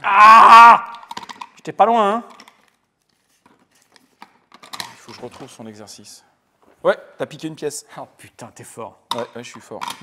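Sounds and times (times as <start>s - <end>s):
plastic toy pieces clicking: 0.8s - 1.6s
man speaking: 5.0s - 10.0s.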